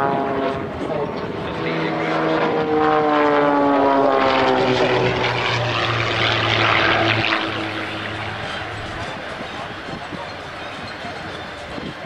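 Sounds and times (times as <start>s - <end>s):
propeller plane engine droning: 0.0s - 12.0s.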